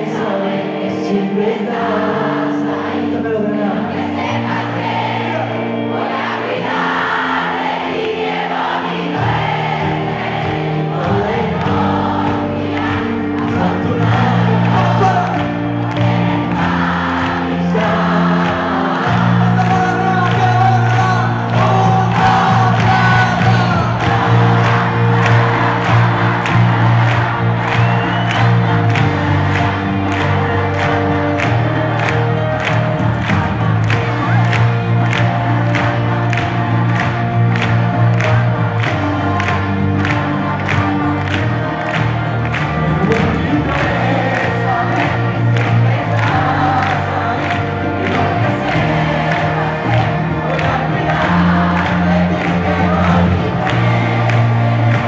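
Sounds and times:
crowd singing and cheering: 0.0s - 55.0s
live pop band playing: 0.0s - 55.0s.

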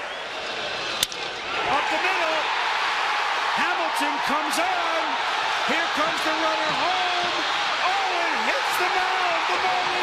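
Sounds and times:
crowd cheering: 0.0s - 10.0s
crowd noise: 0.0s - 10.0s.

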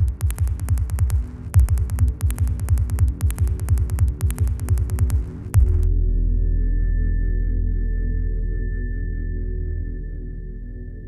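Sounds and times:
glitch electronic music: 0.0s - 5.9s.

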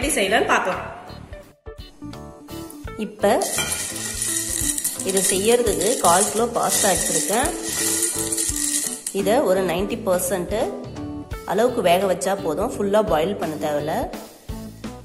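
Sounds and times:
background music: 0.0s - 15.0s
dry pasta rattling in glass dish: 3.4s - 9.5s.

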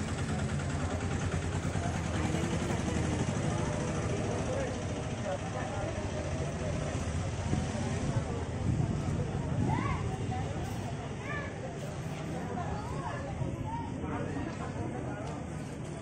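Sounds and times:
crowd talking: 0.0s - 16.0s
low engine rumble: 0.0s - 16.0s.

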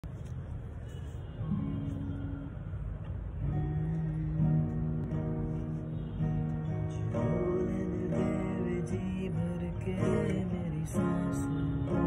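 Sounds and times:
acoustic guitar slow melody: 0.9s - 12.0s.

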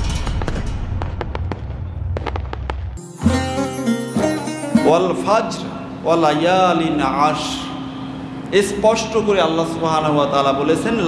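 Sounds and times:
plucked-string music sting: 3.0s - 5.4s.

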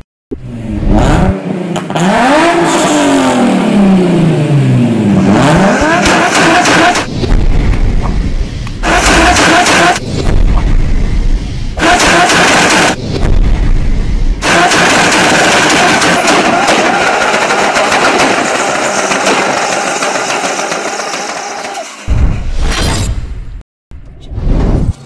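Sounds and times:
car engine revving: 0.4s - 21.0s
deep hit: 7.1s - 8.8s, 10.0s - 11.8s, 13.0s - 14.4s, 22.1s - 23.6s.

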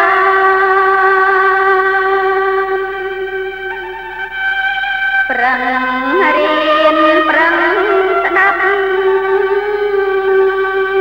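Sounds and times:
person chanting a long note: 0.0s - 4.4s, 5.2s - 11.0s.

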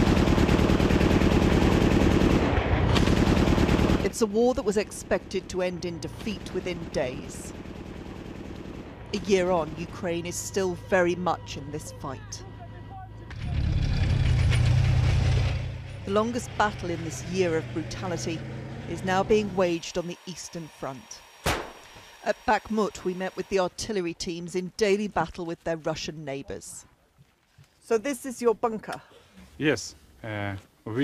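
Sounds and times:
rapid automatic gunfire: 0.0s - 4.3s, 6.2s - 10.4s
heavy engine rumble: 8.7s - 19.9s
tracks clanking and ratcheting: 13.3s - 16.3s
sharp crack: 21.4s - 22.0s.

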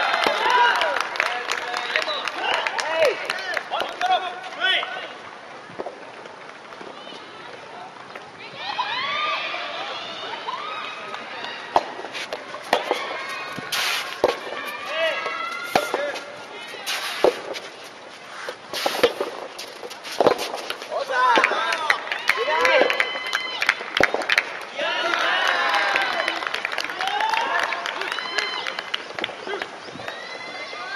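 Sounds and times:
voices calling out: 0.0s - 30.9s
ball bouncing on court: 11.1s - 16.3s, 16.9s - 17.7s, 18.8s - 21.9s, 23.8s - 24.5s
tennis ball struck by rackets: 11.7s - 17.7s, 18.4s - 21.6s, 24.0s - 24.4s.

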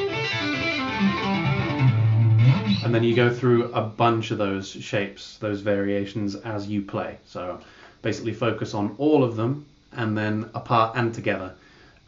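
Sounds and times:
fast electric guitar run: 0.0s - 3.4s
person speaking: 2.5s - 11.6s.

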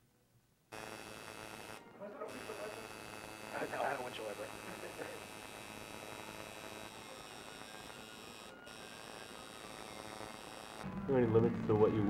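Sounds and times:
tattoo machine buzzing: 0.7s - 12.0s.

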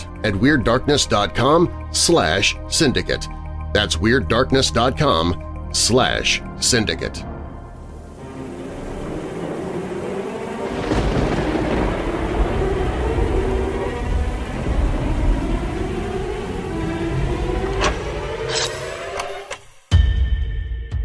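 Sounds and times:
sustained low music tones: 0.0s - 20.1s
deep rumble: 7.2s - 18.5s.

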